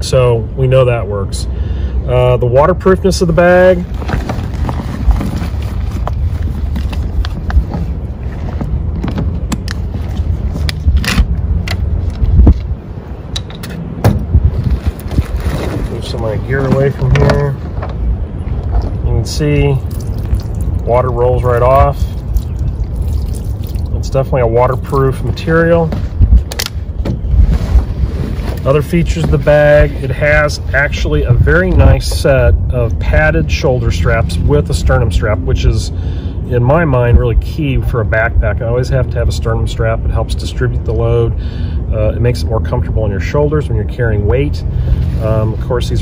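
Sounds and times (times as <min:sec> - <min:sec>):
steady low rumble: 0:00.0 - 0:46.0
backpack rustling and crinkling: 0:03.8 - 0:11.3, 0:14.5 - 0:18.0, 0:27.3 - 0:29.5
wind buffeting microphone: 0:03.8 - 0:38.6.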